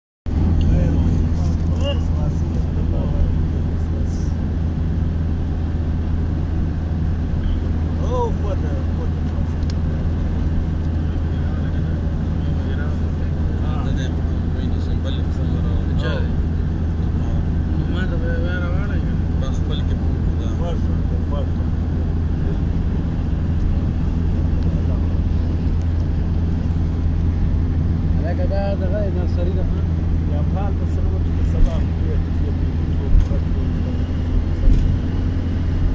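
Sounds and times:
road noise: 0:00.3 - 0:35.9.

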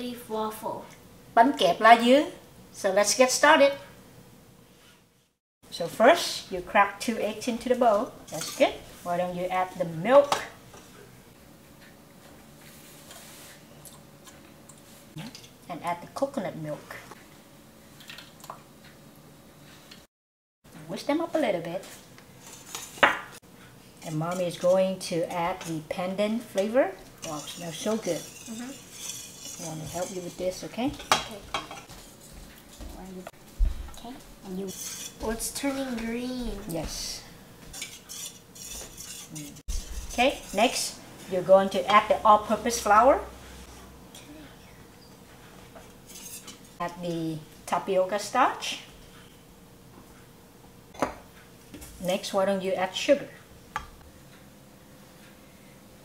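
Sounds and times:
whisk stirring in metal bowl: 0:21.9 - 0:23.0, 0:24.0 - 0:26.0, 0:27.0 - 0:32.9, 0:34.6 - 0:36.2, 0:36.9 - 0:41.0, 0:45.8 - 0:46.7
whisk clinking against bowl: 0:27.2 - 0:30.4.

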